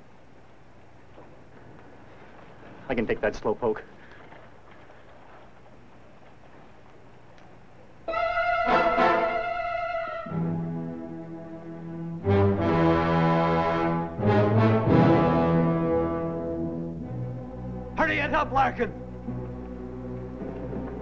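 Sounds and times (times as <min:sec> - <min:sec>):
orchestral brass chords: 0:08.1 - 0:21.0.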